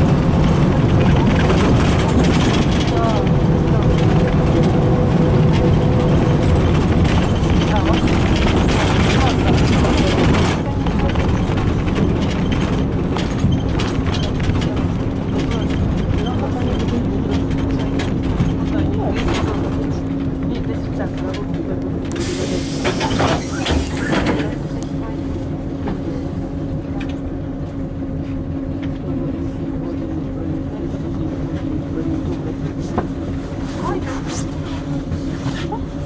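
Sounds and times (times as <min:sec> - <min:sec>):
bus engine idling: 0:00.0 - 0:36.0
pneumatic air hiss: 0:22.2 - 0:24.2.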